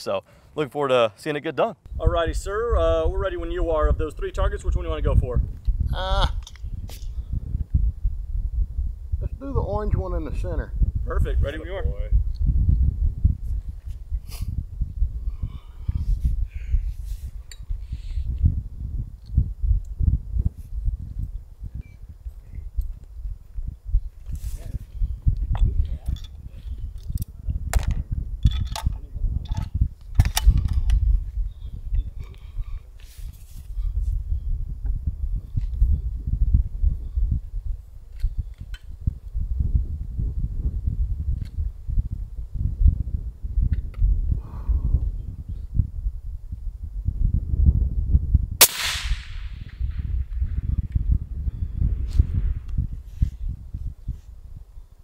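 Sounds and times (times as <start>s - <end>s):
steady low rumble: 38.9s - 55.0s
suppressed rifle shot: 48.6s - 50.6s.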